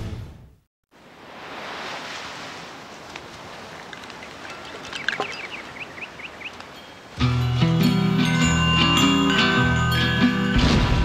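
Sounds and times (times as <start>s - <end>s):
soft rushing wash: 1.0s - 7.2s
music: 7.2s - 11.0s.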